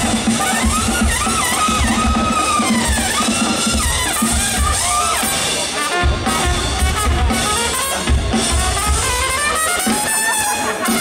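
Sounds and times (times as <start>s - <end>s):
bass drum beats: 0.0s - 11.0s
marching drums: 0.0s - 11.0s
trumpet sliding melody: 0.0s - 11.0s.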